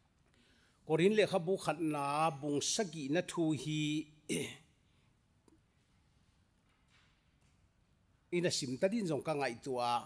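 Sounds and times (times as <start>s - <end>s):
man clearing throat: 4.3s - 4.7s.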